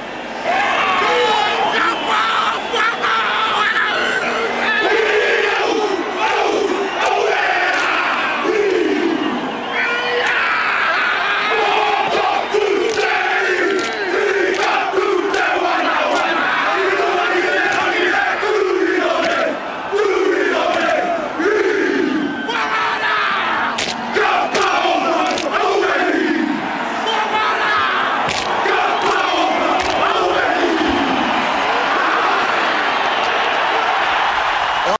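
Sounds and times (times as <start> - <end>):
men chanting and shouting in unison: 0.8 - 32.8
hands slapping bodies: 28.3 - 28.6.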